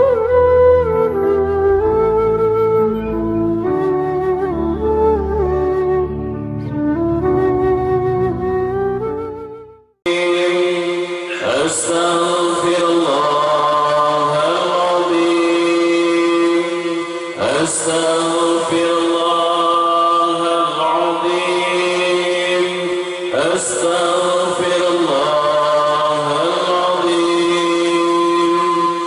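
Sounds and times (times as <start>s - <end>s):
men chanting through a microphone: 10.1s - 29.0s.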